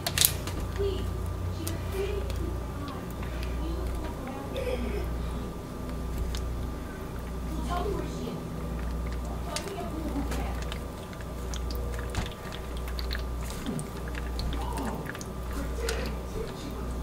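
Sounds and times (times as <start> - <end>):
steady low hum: 0.0 - 17.0
wet squishing of soap batter: 0.1 - 17.0.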